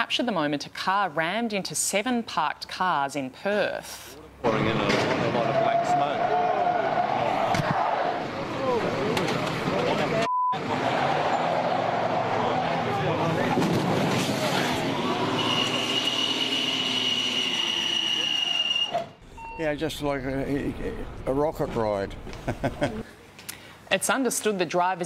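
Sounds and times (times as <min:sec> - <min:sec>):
vehicle noise: 0:04.5 - 0:18.7
short beep: 0:15.4 - 0:19.8.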